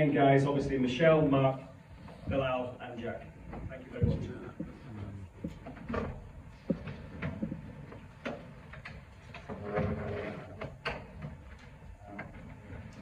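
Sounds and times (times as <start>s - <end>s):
chairs knocking and scraping: 3.1s - 13.0s.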